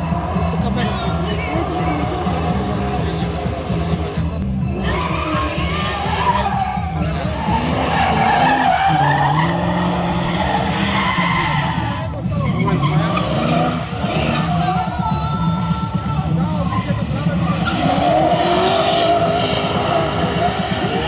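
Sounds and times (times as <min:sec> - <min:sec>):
car engine at high revs: 0:00.0 - 0:21.0
tyres squealing and skidding: 0:00.0 - 0:21.0.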